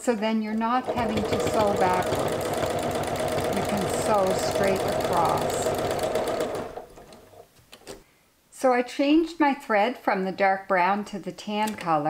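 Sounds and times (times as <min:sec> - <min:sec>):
sewing machine stitching: 0:00.0 - 0:07.4.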